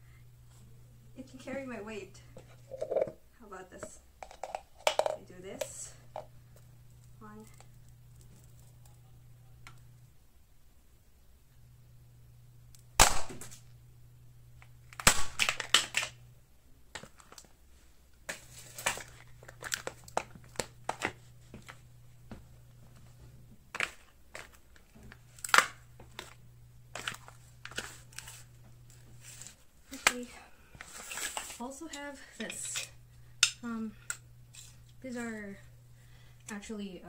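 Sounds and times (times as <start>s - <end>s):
plastic container cracking underfoot: 14.9s - 16.2s, 18.3s - 21.8s.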